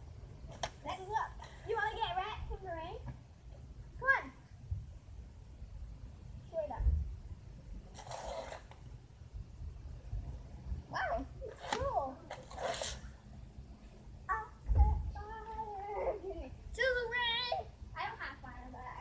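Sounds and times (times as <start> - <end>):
children calling and squealing: 14.2 - 17.8.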